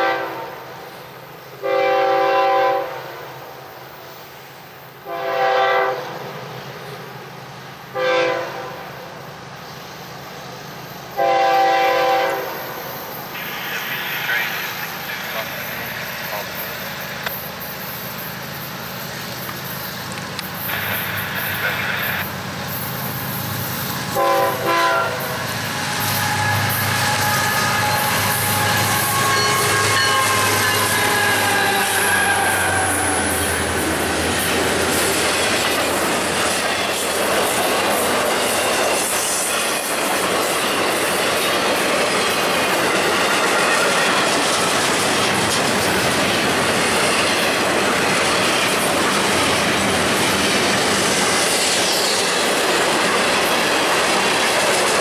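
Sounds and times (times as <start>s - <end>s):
locomotive horn toot: 0.0s - 0.6s, 1.6s - 3.0s, 5.1s - 6.1s, 8.0s - 8.8s, 11.2s - 12.6s, 24.1s - 33.4s
diesel locomotives passing: 0.0s - 55.0s
freight cars wheel-on-rail noise: 0.0s - 55.0s
wheel squeal: 25.6s - 33.5s.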